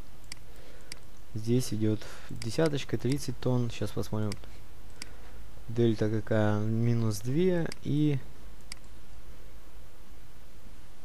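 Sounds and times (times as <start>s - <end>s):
low background hum: 0.0s - 11.0s
computer mouse click: 0.2s - 1.2s, 2.3s - 3.3s, 8.6s - 8.9s.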